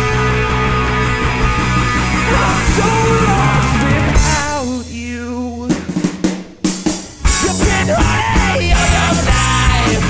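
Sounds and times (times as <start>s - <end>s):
full rock band playing: 0.0s - 10.0s.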